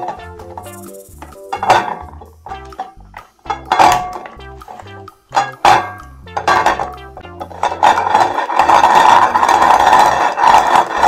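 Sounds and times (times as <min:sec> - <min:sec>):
background music with bass line: 0:00.0 - 0:11.0
continuous clatter: 0:06.6 - 0:11.0.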